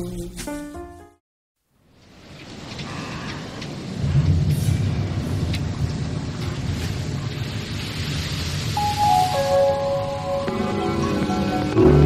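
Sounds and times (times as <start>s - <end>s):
steady musical tones: 8.8s - 12.0s.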